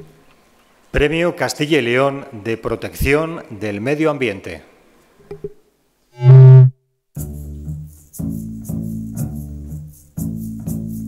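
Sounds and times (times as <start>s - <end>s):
loud held low note: 6.2s - 6.7s.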